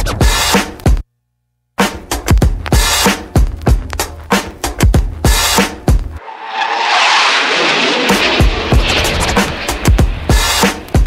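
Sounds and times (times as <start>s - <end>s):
hip-hop drum beat: 0.0s - 1.0s, 1.8s - 6.2s, 8.4s - 11.0s
loud hissing wash: 6.2s - 11.0s.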